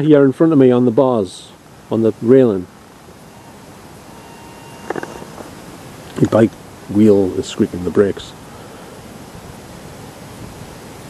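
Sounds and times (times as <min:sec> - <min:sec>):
steady hiss: 0:00.0 - 0:11.0
bicycle brakes squealing: 0:03.2 - 0:05.7.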